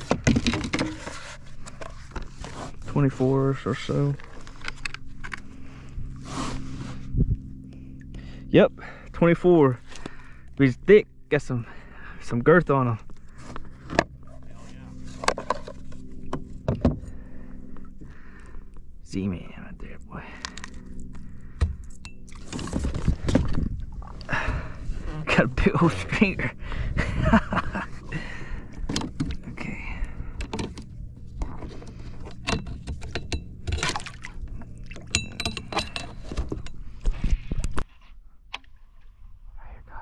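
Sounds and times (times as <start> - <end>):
knocks and clicks of handling fish: 0.0 - 2.4, 13.1 - 14.2, 15.2 - 17.2, 20.4 - 23.8, 28.7 - 29.4, 30.4 - 37.8
boat motor droning: 0.0 - 37.8.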